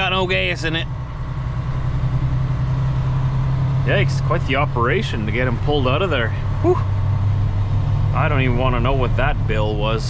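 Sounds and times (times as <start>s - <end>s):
truck diesel engine drone: 0.0s - 10.0s.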